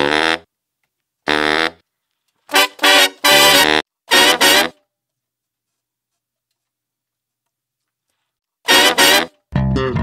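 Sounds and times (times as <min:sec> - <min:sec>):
funk brass stabs: 0:00.0 - 0:00.5, 0:01.3 - 0:01.8, 0:02.5 - 0:04.8, 0:08.7 - 0:10.0.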